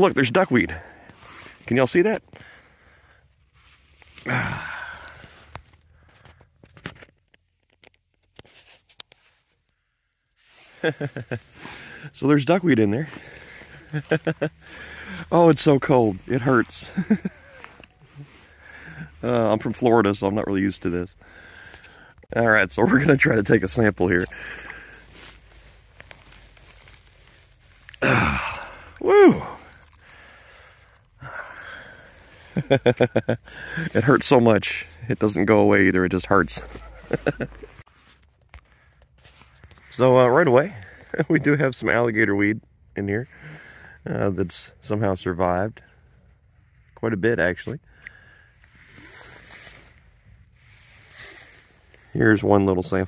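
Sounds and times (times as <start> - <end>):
crinkling of broken ice: 22.8 - 34.1.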